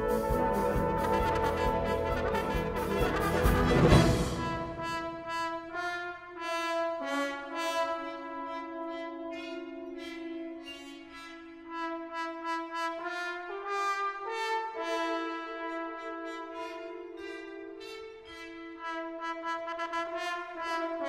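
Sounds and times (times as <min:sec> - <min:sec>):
brass band playing held chords: 0:00.0 - 0:21.0.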